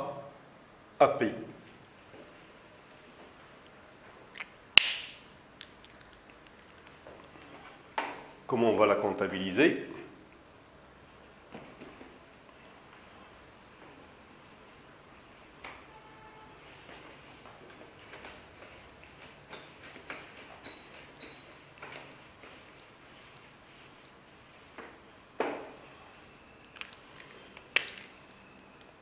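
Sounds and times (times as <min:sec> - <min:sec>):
faint room hiss: 0:00.0 - 0:29.0.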